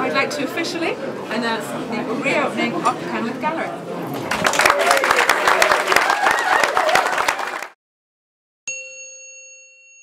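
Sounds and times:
crowd applauding: 4.2s - 7.8s
bright bell-like chime: 8.7s - 10.0s.

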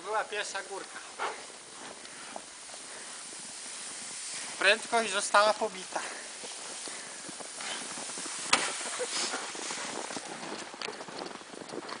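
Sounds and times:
steady hiss: 0.0s - 11.9s
footsteps crunching in snow: 0.0s - 12.0s.

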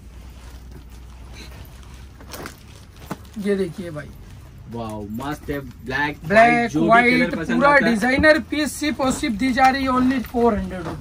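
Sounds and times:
rustling of sweatshirts: 0.0s - 11.0s.

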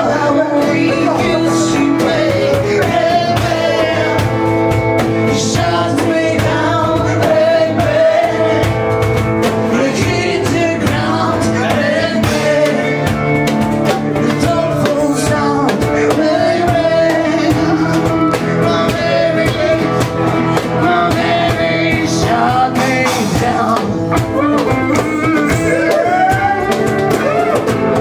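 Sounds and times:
woman singing: 0.0s - 4.4s, 5.2s - 8.8s, 9.7s - 13.1s, 14.2s - 20.0s, 20.6s - 26.8s
electric guitar: 0.0s - 28.0s
strummed acoustic guitar: 0.0s - 28.0s.

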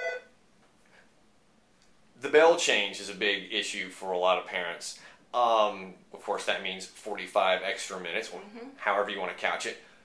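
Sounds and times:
telephone ringing: 0.0s - 0.2s.

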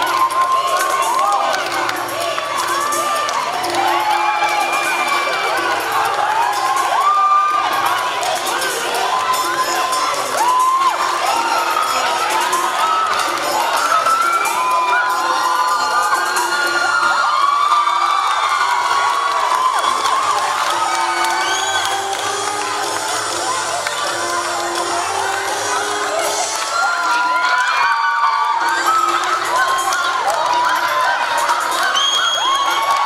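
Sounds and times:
crowd shouting and cheering: 0.0s - 33.0s.

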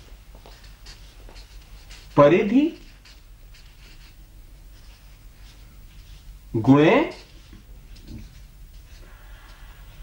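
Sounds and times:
marker pen writing on paper: 0.5s - 5.6s.

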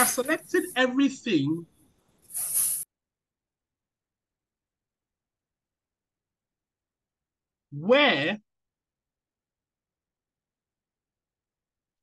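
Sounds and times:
speech: 0.0s - 1.7s, 7.8s - 8.4s
short breathy hiss: 2.2s - 2.9s.

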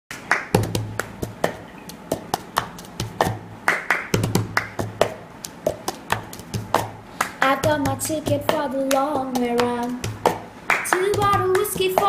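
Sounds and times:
hand claps: 0.1s - 12.0s.

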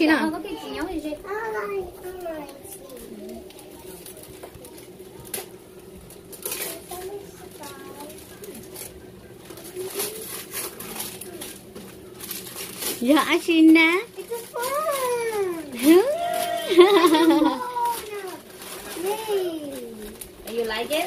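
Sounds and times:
faint background chatter: 0.0s - 21.0s
wrapping paper rustling and ripping: 0.4s - 21.0s.

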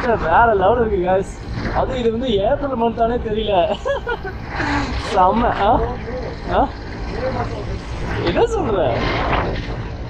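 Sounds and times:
motorcycle engine rumble: 0.0s - 10.0s
wind noise: 0.0s - 10.0s.

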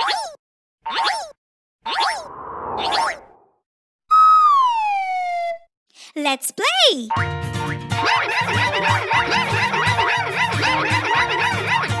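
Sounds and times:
cartoon whistle sliding down: 4.1s - 5.7s.

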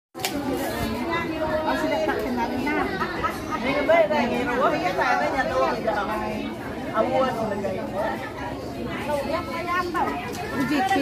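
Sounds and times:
women chattering: 0.2s - 11.0s.

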